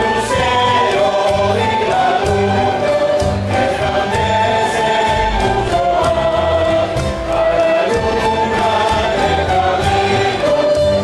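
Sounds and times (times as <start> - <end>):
accordion: 0.0 - 11.0
male voices singing in chorus: 0.0 - 11.0
strummed guitars: 0.0 - 11.0.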